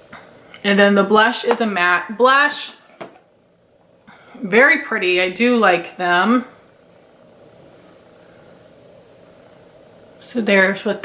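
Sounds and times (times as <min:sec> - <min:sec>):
faint room hum and hiss: 0:00.0 - 0:11.0.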